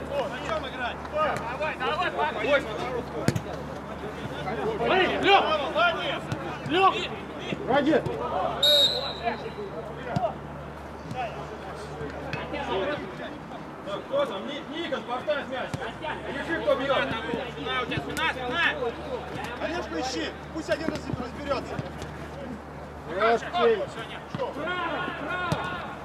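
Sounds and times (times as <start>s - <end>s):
players shouting: 4.0s - 10.4s, 22.4s - 26.0s
short high whistle blast: 8.6s - 9.3s.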